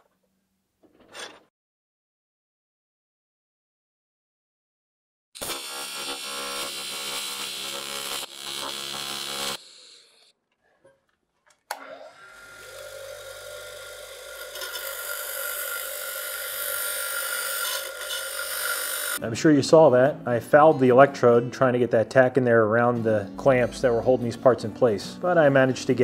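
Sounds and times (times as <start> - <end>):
welding arc buzzing: 5.4 - 10.3, 12.2 - 19.2.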